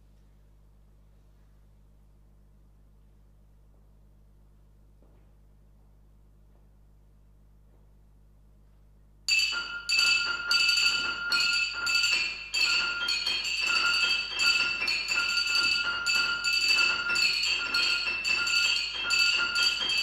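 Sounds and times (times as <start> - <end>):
glassy bell-like strikes: 9.3 - 20.0.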